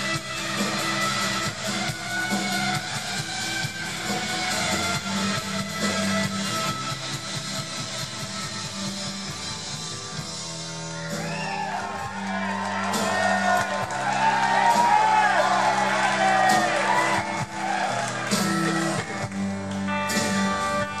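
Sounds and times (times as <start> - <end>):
live rock band playing: 0.0 - 21.0
audience whooping and shouting: 11.0 - 19.5.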